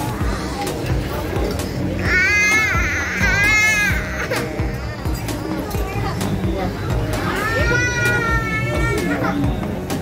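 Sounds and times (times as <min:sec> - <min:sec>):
background music: 0:00.0 - 0:10.0
baby crying: 0:02.0 - 0:05.0, 0:07.3 - 0:09.4.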